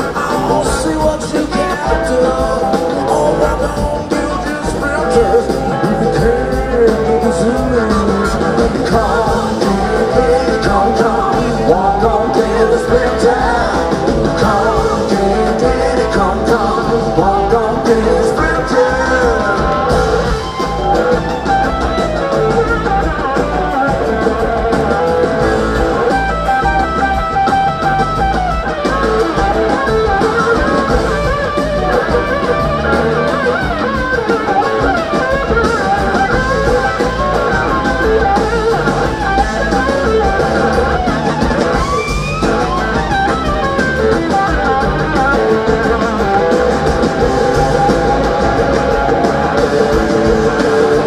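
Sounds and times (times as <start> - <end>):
bass guitar: 0.0 - 51.0
drums: 0.0 - 51.0
electric guitar lead: 0.0 - 51.0.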